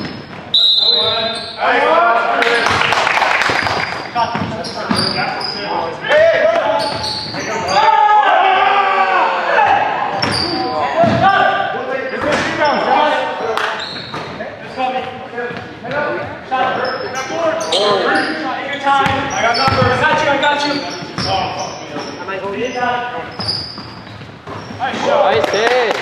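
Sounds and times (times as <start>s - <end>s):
sneakers squeaking: 0.0s - 1.8s, 3.4s - 8.0s, 9.6s - 25.6s
players shouting: 5.6s - 11.9s
basketball bouncing: 19.0s - 20.3s, 23.4s - 24.8s.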